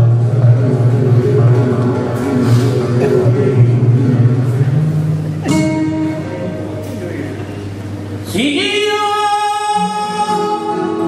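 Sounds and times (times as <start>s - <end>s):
flamenco guitar playing: 0.0s - 11.0s.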